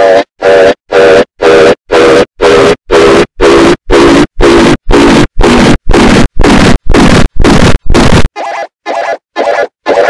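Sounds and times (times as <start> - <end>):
distorted stuttering sound sample: 0.0 - 10.0.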